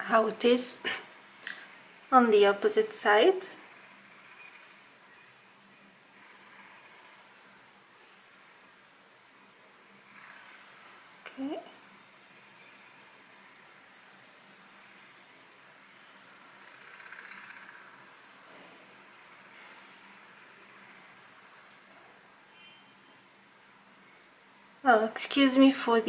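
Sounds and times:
faint construction noise: 0.0 - 26.0.

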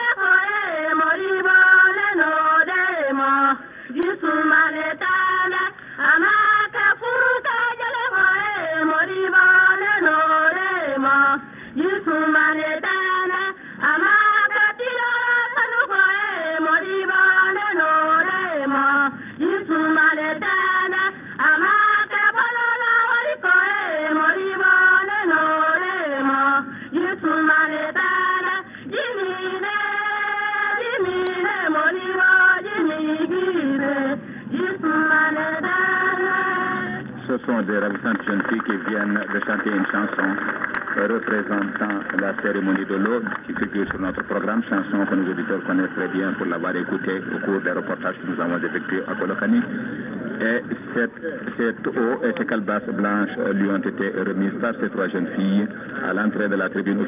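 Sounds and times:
girls singing: 0.0 - 37.1
man speaking: 37.3 - 49.8, 50.4 - 57.0.

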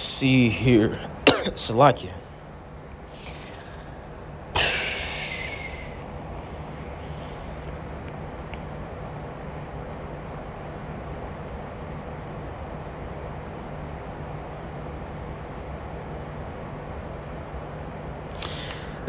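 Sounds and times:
low background hum: 0.0 - 19.0
faint hiss: 3.0 - 10.8.

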